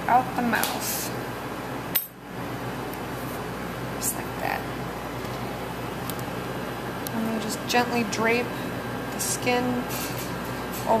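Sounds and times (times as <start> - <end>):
room hum and hiss: 0.0 - 11.0.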